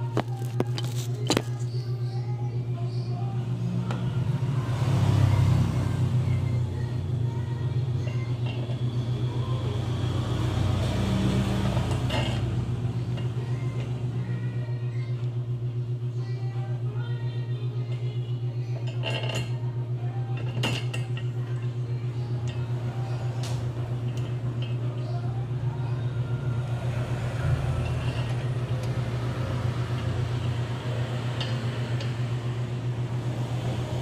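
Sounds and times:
vehicle engine rumbling: 0.0s - 16.2s, 17.8s - 34.0s.

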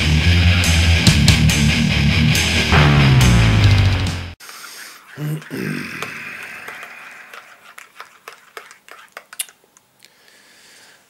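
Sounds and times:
mouth noises: 4.4s - 9.8s
man's low vocal sound: 5.2s - 6.9s.

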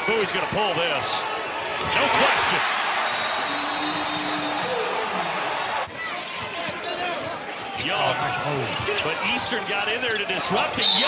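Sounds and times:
arena crowd cheering: 0.0s - 11.0s.

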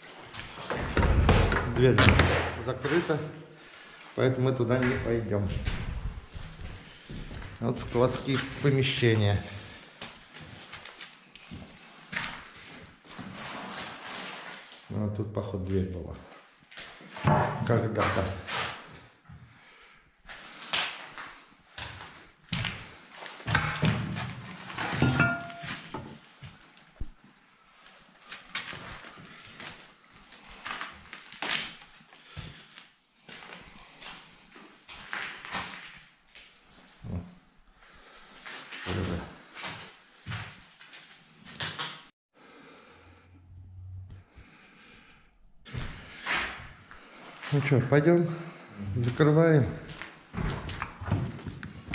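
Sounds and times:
footsteps and scuffs: 4.7s - 9.0s, 38.4s - 41.8s.

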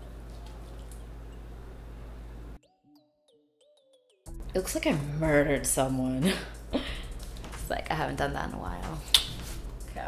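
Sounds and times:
low hum and room noise: 0.0s - 2.6s.

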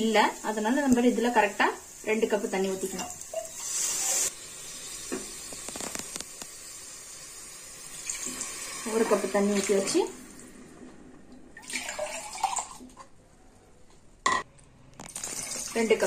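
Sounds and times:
faint sizzle in pressure cooker: 0.0s - 10.3s
liquid pouring into steel cup: 11.6s - 13.0s.

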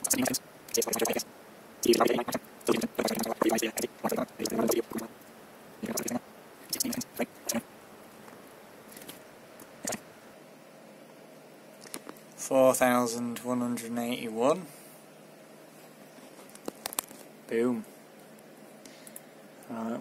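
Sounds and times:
man speaking indistinctly: 1.8s - 5.1s.

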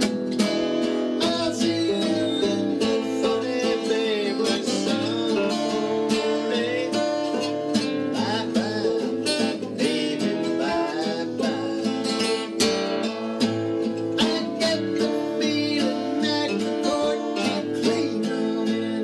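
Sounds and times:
acoustic guitar strumming: 0.0s - 19.0s
man singing: 0.8s - 19.0s.

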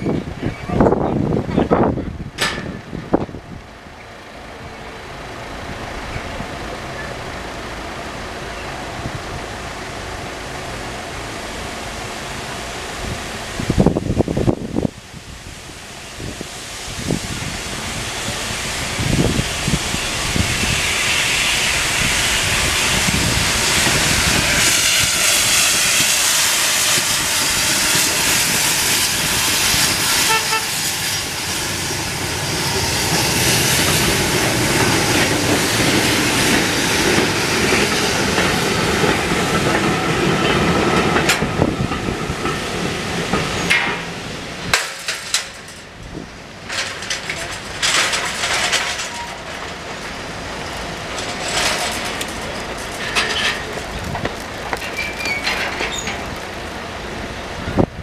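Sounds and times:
freight train rolling over crossing: 0.0s - 58.0s
train wheels clicking: 17.1s - 56.9s.

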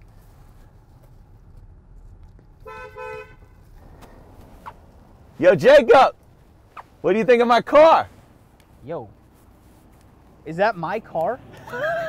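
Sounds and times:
low rumble of moving car: 0.0s - 12.0s
car horn toots: 2.6s - 3.7s.

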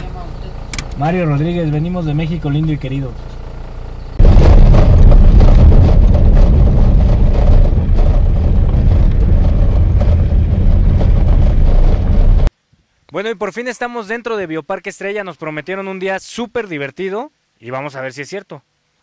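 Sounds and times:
wind buffeting microphone: 4.2s - 12.5s.

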